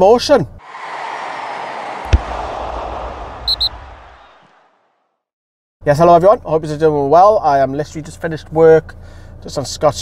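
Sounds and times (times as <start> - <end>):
rushing whoosh: 0.6 - 4.9
high blips: 1.5 - 4.5
sharp hit with booming tail: 1.8 - 4.5.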